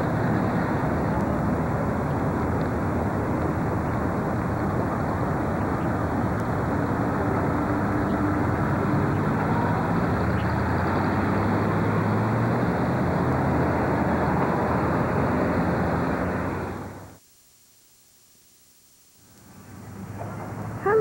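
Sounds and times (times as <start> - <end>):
car engine: 0.0 - 17.2
road noise inside car: 0.0 - 17.2, 19.3 - 21.0.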